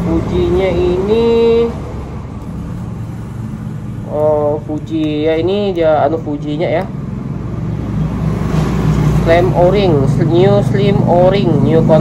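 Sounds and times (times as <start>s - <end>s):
motorbike engines passing: 0.0s - 12.0s.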